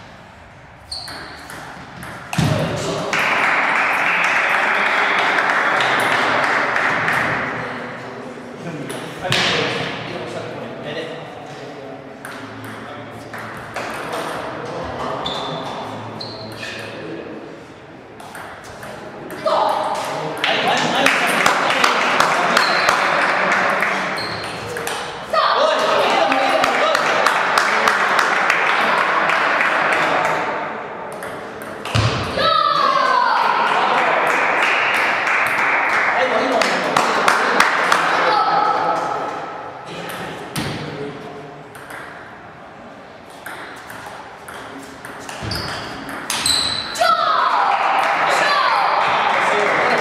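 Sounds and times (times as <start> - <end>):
hubbub of voices: 2.4 - 43.4, 44.2 - 50.0
table tennis balls clicking: 43.3 - 46.4.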